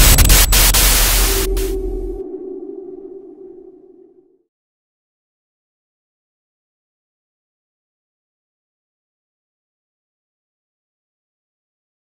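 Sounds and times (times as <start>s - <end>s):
rumbling explosion: 0.0s - 2.3s
held low tone: 0.0s - 4.5s.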